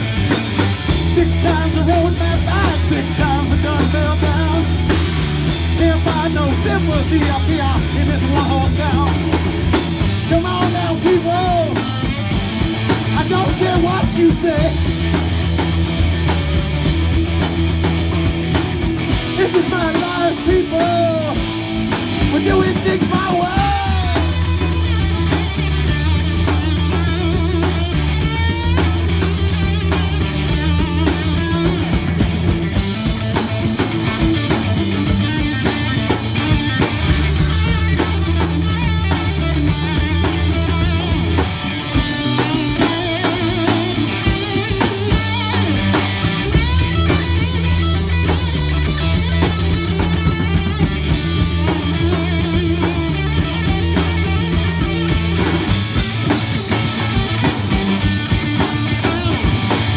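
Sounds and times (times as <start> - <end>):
bass guitar: 0.0 - 59.9
drum kit: 0.0 - 59.9
electric guitar: 0.0 - 59.9.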